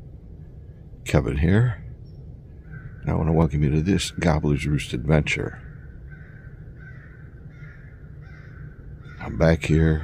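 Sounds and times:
low steady rumble: 0:00.0 - 0:10.0
faint bird calls: 0:00.2 - 0:10.0.

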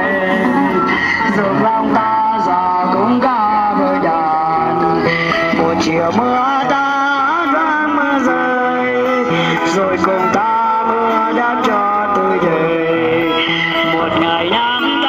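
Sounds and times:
electric guitar bending notes: 0:00.0 - 0:15.0
street band music: 0:00.0 - 0:15.0.

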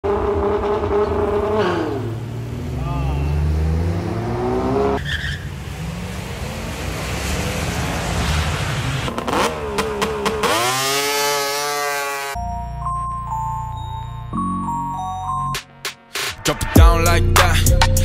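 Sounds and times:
car engines revving: 0:00.0 - 0:12.4.

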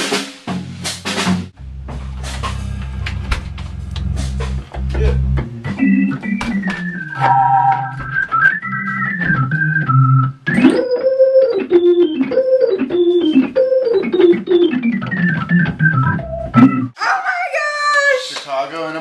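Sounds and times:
organ playing slow melody: 0:01.6 - 0:16.9.

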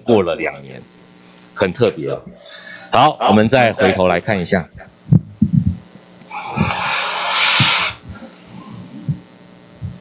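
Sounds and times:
soft low handling thumps: 0:05.1 - 0:05.9.

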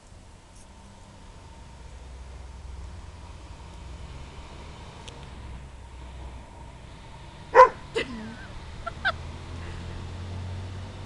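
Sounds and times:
dog yipping: 0:07.5 - 0:07.8
dog barking: 0:07.5 - 0:07.9.

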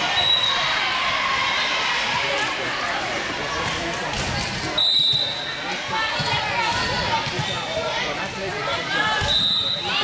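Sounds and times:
spectators' voices: 0:00.0 - 0:10.0
referee's whistle: 0:00.1 - 0:00.7, 0:04.8 - 0:05.5, 0:09.2 - 0:10.0.

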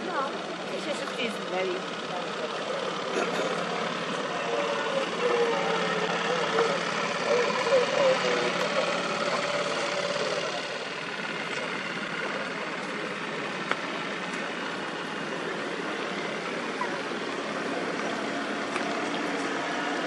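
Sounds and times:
boat engines idling: 0:00.0 - 0:20.0.

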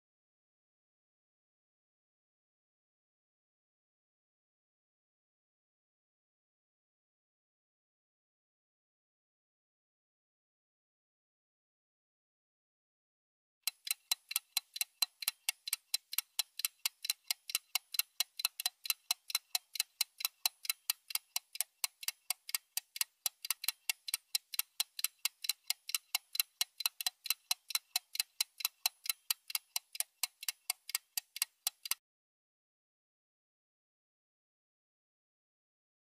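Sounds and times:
clock ticking: 0:13.6 - 0:32.0.

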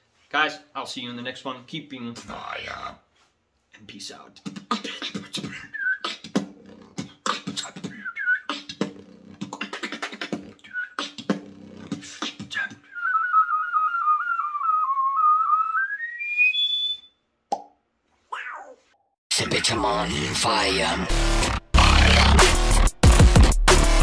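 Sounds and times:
beatboxing kick and snare: 0:04.4 - 0:12.8, 0:21.8 - 0:24.0
fluttering beatbox whistle: 0:04.5 - 0:17.7
whistled chirps: 0:12.9 - 0:17.2.

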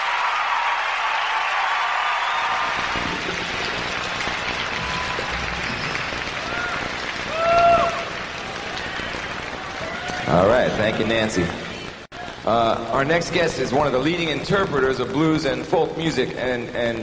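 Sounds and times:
crowd applauding and cheering: 0:00.0 - 0:14.1.

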